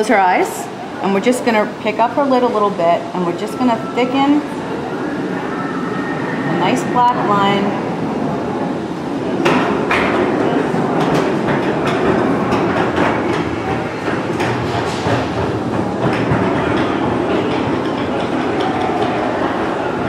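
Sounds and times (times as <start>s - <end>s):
steady background din: 0.0s - 20.0s
sharp knocks and clicks: 11.0s - 19.2s.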